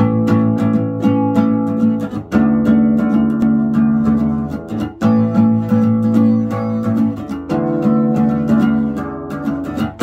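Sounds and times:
classical guitar strummed: 0:00.0 - 0:10.0.

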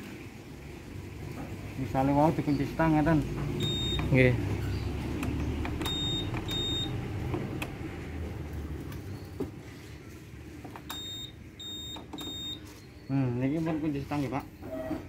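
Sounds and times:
short high beeps: 0:03.6 - 0:04.8, 0:05.8 - 0:07.0.

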